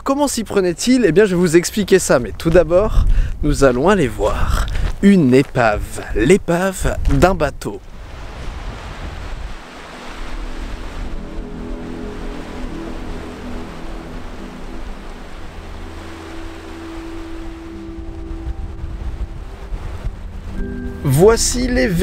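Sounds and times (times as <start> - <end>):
wind buffeting microphone: 1.1 - 21.0
waves washing up sandy beach: 7.8 - 21.5
soft background music: 9.5 - 22.0.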